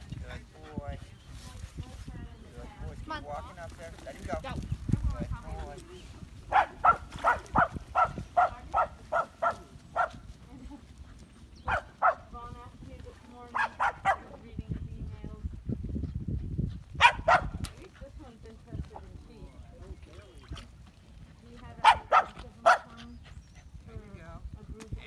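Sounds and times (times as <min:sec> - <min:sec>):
dog barking: 0:06.5 - 0:10.2, 0:11.6 - 0:12.3, 0:13.5 - 0:14.3, 0:17.0 - 0:17.6, 0:21.8 - 0:23.0.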